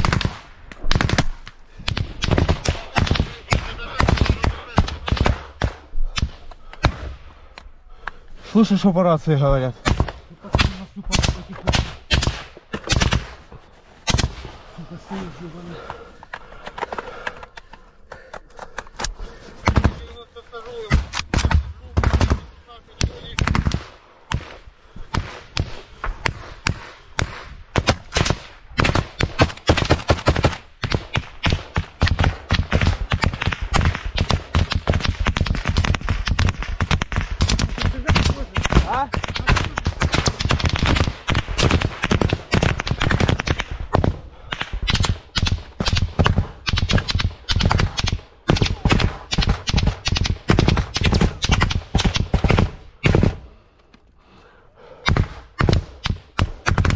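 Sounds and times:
small-arms gunfire: 0.0s - 7.1s, 9.8s - 13.4s, 20.9s - 53.4s, 55.0s - 56.9s.

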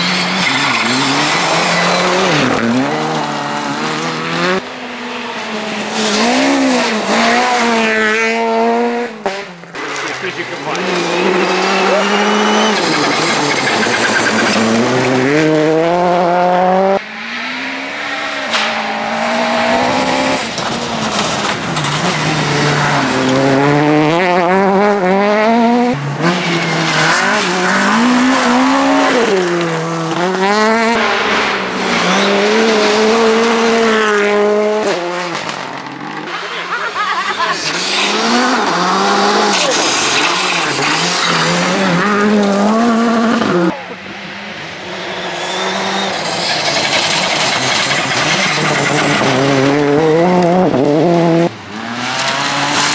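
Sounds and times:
gravel and tyre noise: 0.0s - 52.9s
rally car engines accelerating: 0.0s - 52.9s.

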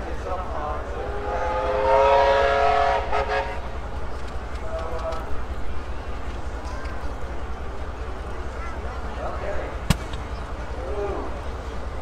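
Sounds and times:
tank engine rumble: 3.1s - 12.0s.

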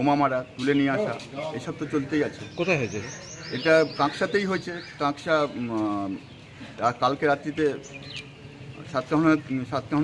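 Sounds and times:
man talking: 0.0s - 7.9s, 8.8s - 10.0s
birds chirping: 0.0s - 10.0s.

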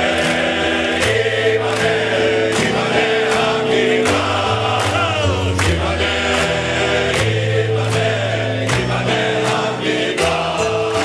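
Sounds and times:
men's choir singing: 0.0s - 11.0s.

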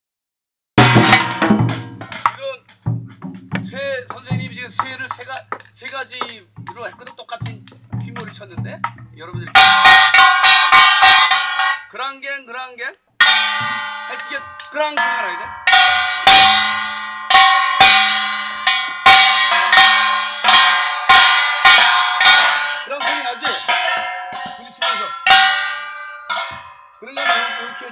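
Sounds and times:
drum struck with stick: 0.8s - 11.8s, 13.2s - 27.9s
person speaking: 3.6s - 9.6s, 13.7s - 15.6s, 22.4s - 23.8s, 24.4s - 25.2s, 27.0s - 27.9s.

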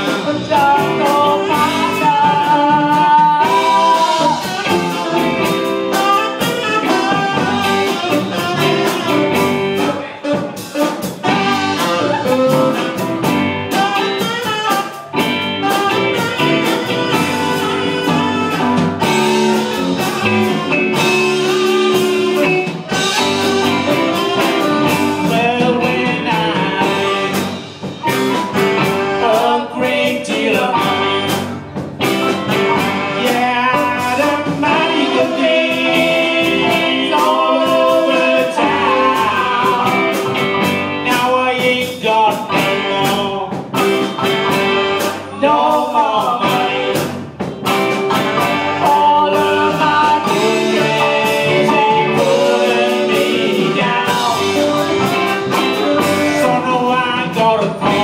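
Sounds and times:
saxophone melody: 0.0s - 41.2s, 42.1s - 58.0s
blues band playing: 0.0s - 58.0s.

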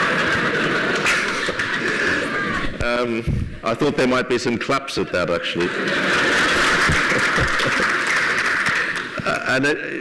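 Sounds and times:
audience clapping: 5.6s - 9.8s.

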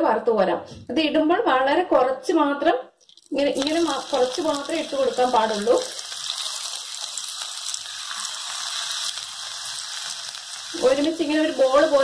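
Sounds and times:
fritters sizzling in hot oil: 3.0s - 12.0s.

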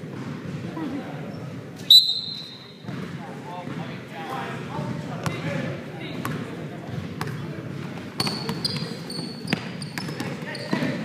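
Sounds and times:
murmur of voices: 0.0s - 11.0s
sneaker squeaks: 1.2s - 3.2s, 8.1s - 11.0s
basketball bouncing on hardwood floor: 2.8s - 3.8s, 6.2s - 10.9s.

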